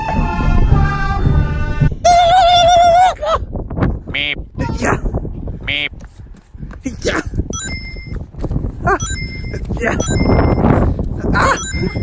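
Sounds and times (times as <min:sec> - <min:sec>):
electronic beeps rising to chime: 0:07.6 - 0:08.2, 0:09.0 - 0:10.7, 0:11.6 - 0:12.0.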